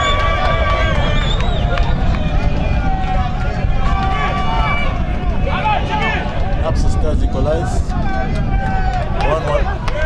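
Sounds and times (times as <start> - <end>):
steady low rumble: 0.0 - 10.0
people shouting outdoors: 2.7 - 10.0.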